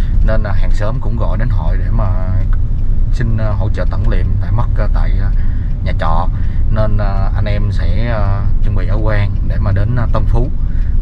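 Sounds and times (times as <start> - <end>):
person talking: 0.0 - 11.0
van engine rumble: 0.0 - 11.0.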